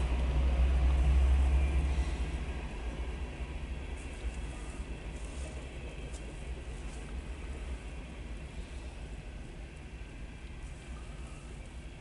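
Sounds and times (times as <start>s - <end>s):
diesel locomotive rumble: 0.0s - 12.0s
train cars rolling on rails: 0.0s - 12.0s.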